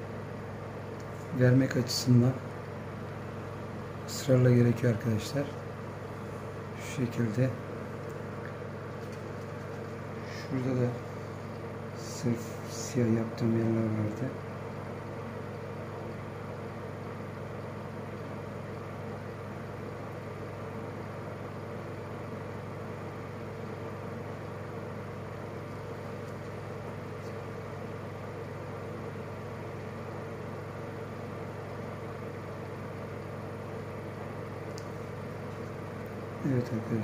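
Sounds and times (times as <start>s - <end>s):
steady hum: 0.0s - 37.0s.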